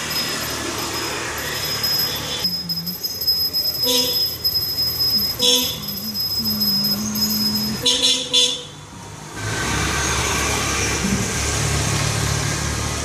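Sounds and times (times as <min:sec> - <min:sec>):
vehicle horn: 0:05.4 - 0:05.8, 0:07.8 - 0:08.7.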